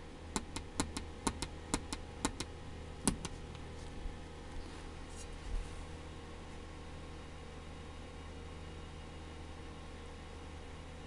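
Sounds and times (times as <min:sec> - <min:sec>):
low steady hum: 0:00.0 - 0:11.0
clock switches clicking: 0:00.4 - 0:02.5.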